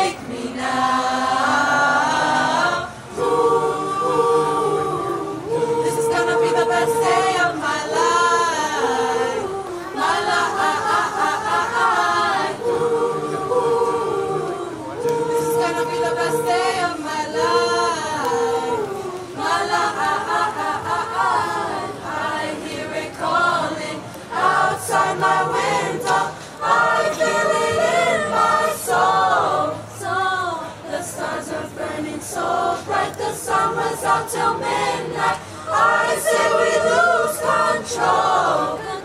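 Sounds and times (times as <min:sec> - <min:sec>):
mixed-voice choir singing: 0:00.0 - 0:39.0.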